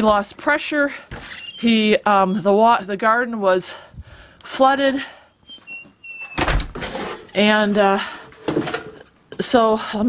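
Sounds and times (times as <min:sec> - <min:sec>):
high squeak: 0:01.2 - 0:02.6, 0:05.4 - 0:06.5
door shutting with a thud: 0:06.3 - 0:07.0.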